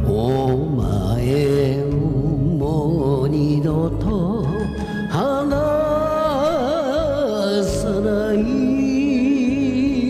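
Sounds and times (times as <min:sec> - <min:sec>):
karaoke backing track: 0:00.0 - 0:10.0
man singing a ballad: 0:00.0 - 0:10.0.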